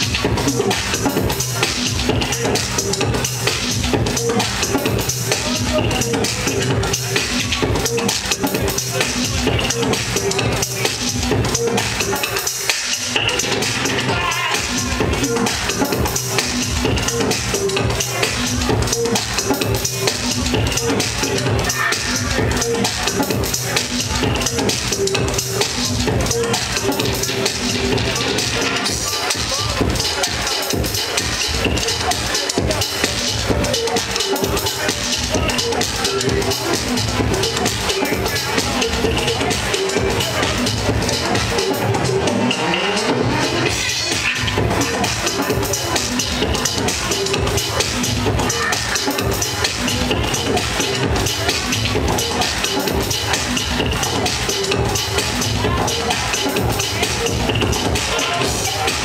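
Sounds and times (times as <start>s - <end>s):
electronic dance music: 0.0s - 59.0s.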